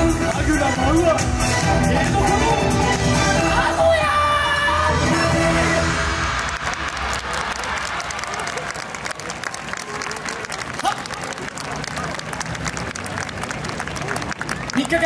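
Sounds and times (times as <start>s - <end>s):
backing music: 0.0s - 7.0s
crowd applauding: 5.6s - 15.0s
voices through clapping: 6.2s - 15.0s.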